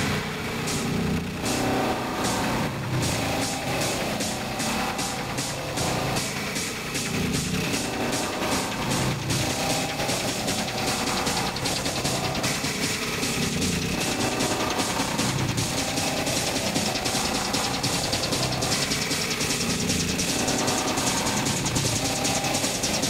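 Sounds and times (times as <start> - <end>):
buzzing synth texture: 0.0 - 23.0
high percussion ticks: 0.0 - 23.0
pounding kick drum: 1.4 - 23.0.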